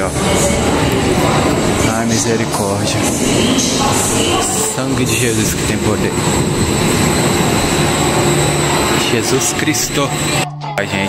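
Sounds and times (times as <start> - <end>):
gondola lift machinery rushing: 0.0 - 11.0.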